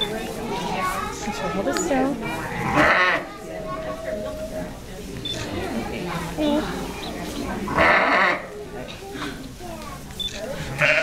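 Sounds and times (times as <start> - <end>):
sheep bleating: 2.5 - 3.2, 7.7 - 8.5, 10.8 - 11.0.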